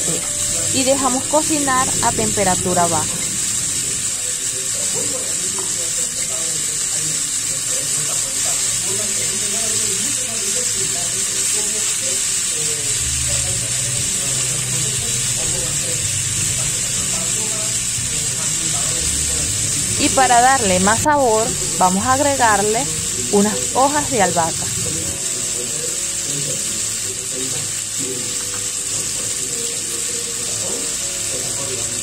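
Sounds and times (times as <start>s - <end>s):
faint music: 0.0s - 32.0s
meat sizzling in a pan: 0.0s - 32.0s.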